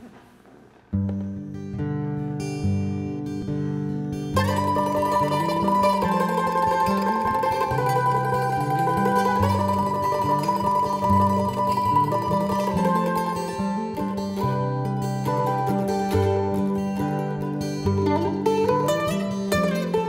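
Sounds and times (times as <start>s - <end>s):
mandolin picking melody: 0.9s - 20.0s
strummed acoustic guitar: 0.9s - 20.0s.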